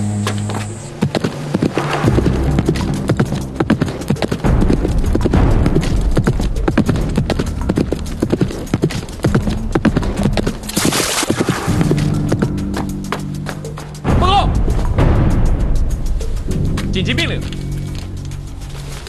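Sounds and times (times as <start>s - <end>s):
horse hoofbeats galloping: 0.4s - 13.7s
hooves splashing through mud: 1.0s - 12.5s.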